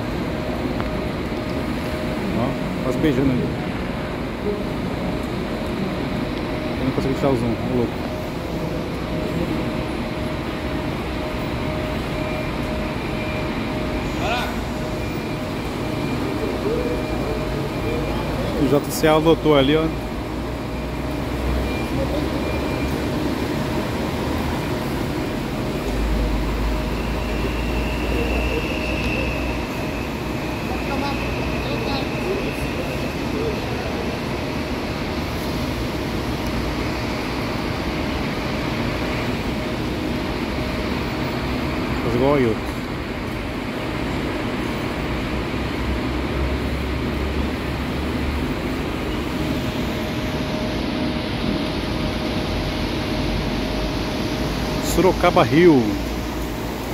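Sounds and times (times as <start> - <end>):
diesel buses manoeuvring: 0.0 - 56.9
high whine: 0.0 - 56.9.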